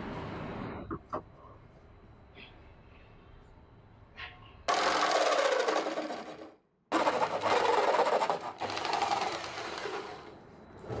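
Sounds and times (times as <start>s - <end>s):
electric jigsaw cutting plastic: 4.7s - 10.3s.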